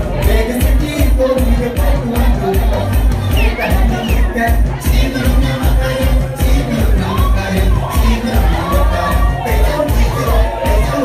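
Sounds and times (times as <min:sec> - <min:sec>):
crowd shouting and cheering: 0:00.0 - 0:11.0
dance music with heavy bass: 0:00.0 - 0:11.0.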